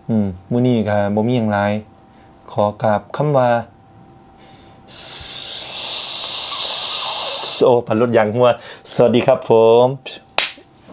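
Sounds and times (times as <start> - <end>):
loud high-pitched hiss: 4.9 - 7.7.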